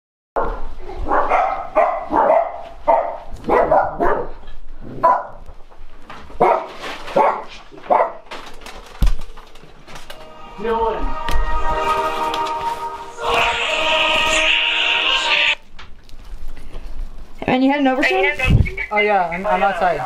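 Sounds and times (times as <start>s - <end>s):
dog barking: 0.4s - 4.4s, 5.0s - 5.4s, 6.4s - 8.3s.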